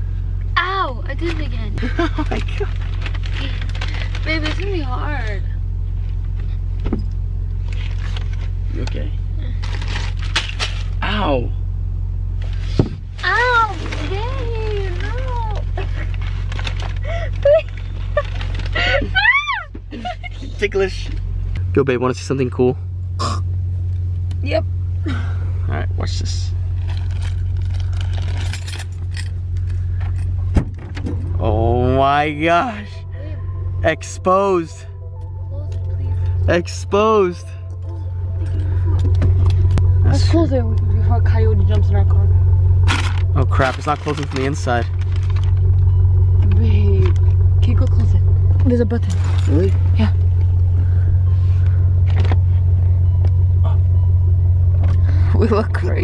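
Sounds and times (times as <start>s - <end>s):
car engine humming: 0.0s - 56.0s
keys jangling: 26.9s - 30.4s, 49.1s - 49.7s.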